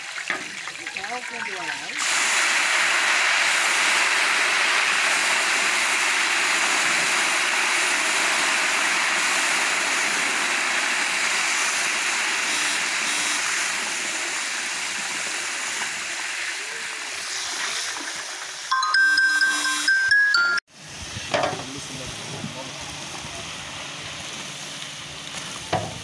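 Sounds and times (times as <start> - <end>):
hot fat sizzling: 0.0 - 18.9, 20.7 - 26.0.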